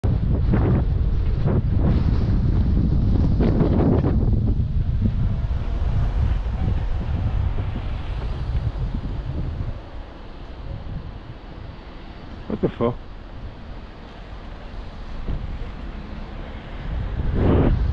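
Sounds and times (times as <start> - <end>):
wind buffeting microphone: 0.0 - 17.9.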